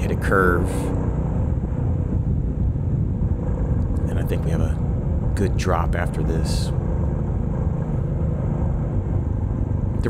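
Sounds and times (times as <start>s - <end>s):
motorcycle engine and road noise: 0.0s - 10.0s.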